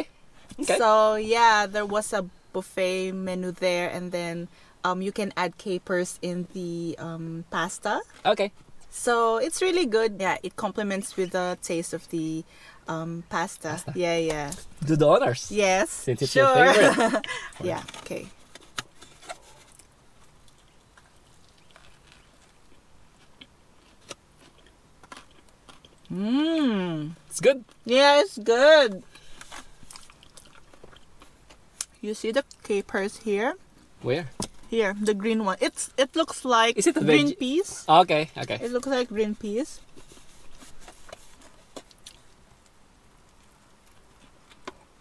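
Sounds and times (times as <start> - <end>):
small clicks and crunches: 17.7 - 26.0
faint chewing: 17.8 - 26.4, 29.0 - 32.6, 39.8 - 44.9.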